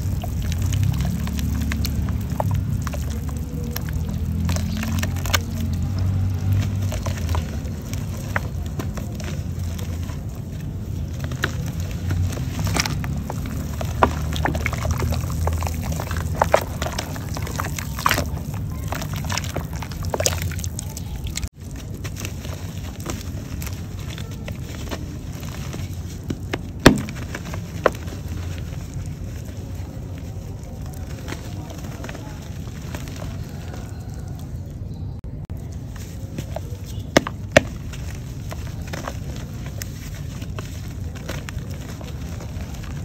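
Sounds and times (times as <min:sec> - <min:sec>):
water sloshing: 0:00.0 - 0:34.4.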